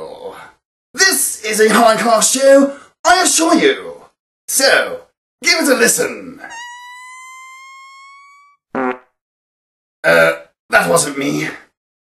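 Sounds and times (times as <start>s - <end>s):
squeaky fart sound effect: 6.5s - 9.2s.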